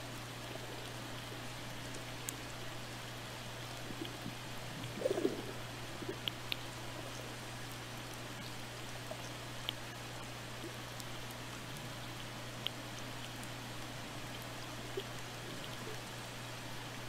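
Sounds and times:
constant low hum: 0.0 - 17.0
underwater burble: 3.6 - 11.0
underwater hiss: 4.6 - 6.2.

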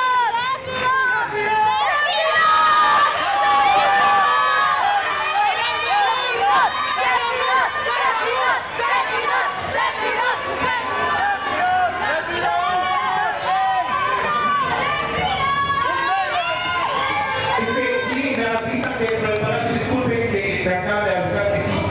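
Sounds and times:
crowd cheering and shouting: 0.0 - 20.8.

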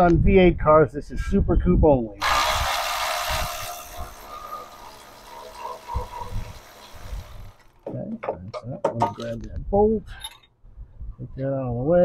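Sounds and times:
power tool hiss: 2.2 - 7.7.

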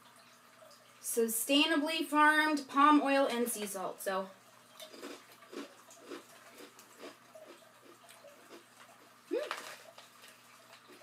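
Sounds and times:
chewing crunchy rice crackers: 4.8 - 11.0.

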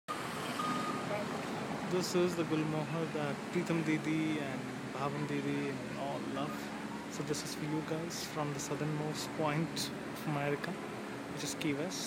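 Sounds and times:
street noise: 0.1 - 12.0
short high beep: 0.5 - 1.1.

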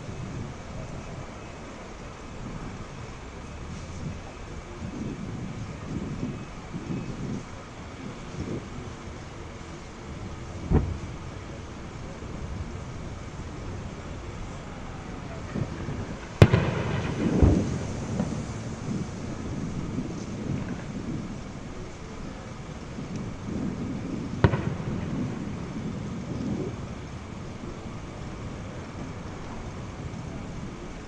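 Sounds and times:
outdoor background noise: 0.0 - 31.0
distant explosion booms: 10.6 - 13.4, 15.3 - 21.5, 23.0 - 27.4.

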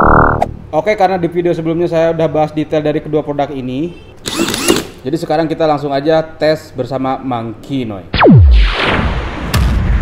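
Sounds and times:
deep boom: 8.2 - 10.0.

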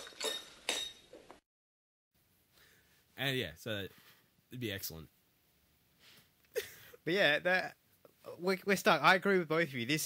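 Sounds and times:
crockery and cutlery clinking: 0.0 - 1.3.

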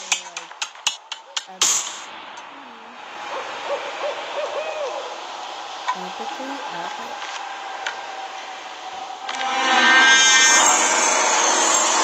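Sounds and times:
steady hiss: 0.0 - 11.3
owl hooting: 3.2 - 8.4.

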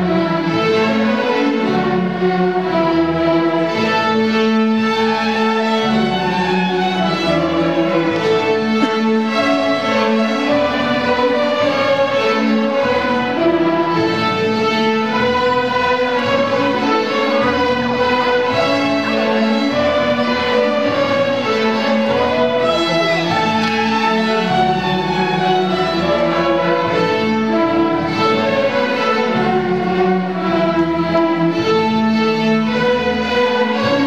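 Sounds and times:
string orchestra playing: 0.0 - 34.0.

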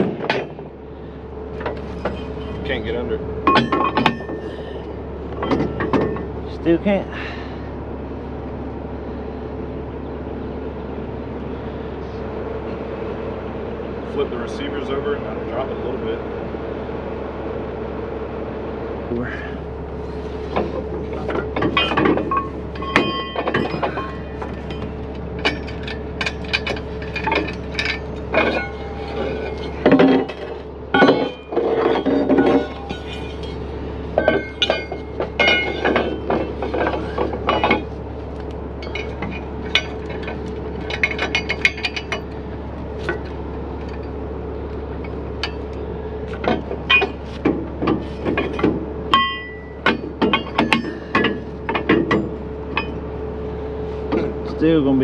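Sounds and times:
metal clanking: 0.0 - 0.8, 1.5 - 6.8, 20.0 - 53.2
steady hum: 0.0 - 55.0.

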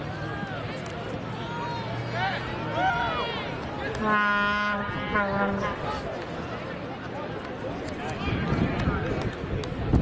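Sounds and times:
distant shouting: 0.0 - 6.1.

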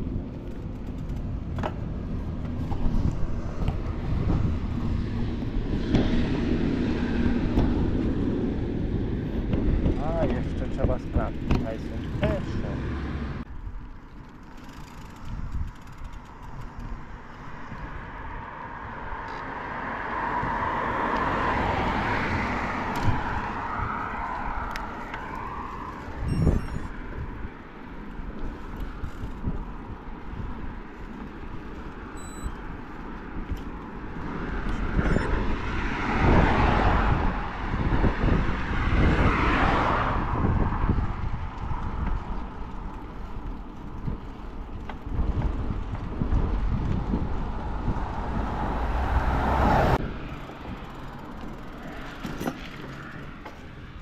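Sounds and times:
wind rushing over microphone: 0.0 - 13.9, 15.2 - 51.7
bicycle tyre noise: 13.4 - 54.0.

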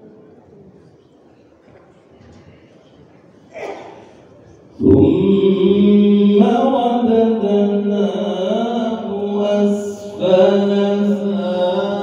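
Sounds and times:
man chanting over loudspeaker: 4.7 - 12.0.

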